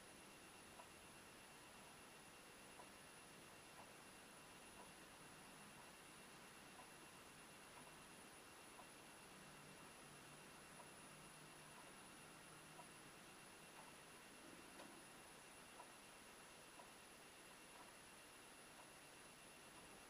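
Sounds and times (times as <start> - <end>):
faint ticking: 2.6 - 20.0.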